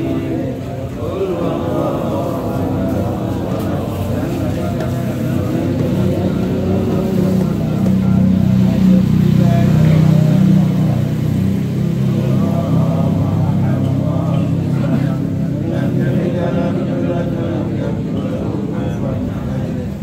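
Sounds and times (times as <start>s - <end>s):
people's voices: 0.0s - 20.0s
steady low drone: 0.0s - 20.0s.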